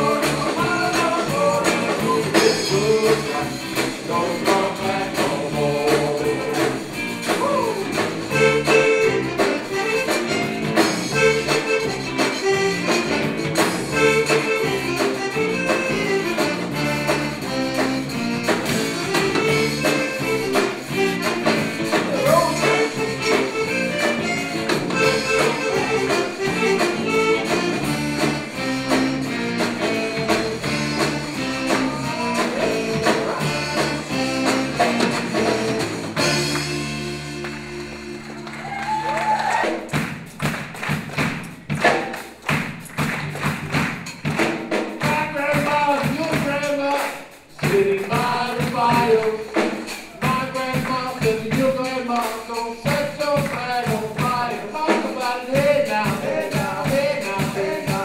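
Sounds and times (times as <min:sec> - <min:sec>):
rubboard scraped in rhythm: 0:00.0 - 0:37.9, 0:43.1 - 0:58.0
electric guitars: 0:00.0 - 0:40.0
bass: 0:00.0 - 0:58.0
drums: 0:00.0 - 0:58.0
piano accordion: 0:08.3 - 0:38.4.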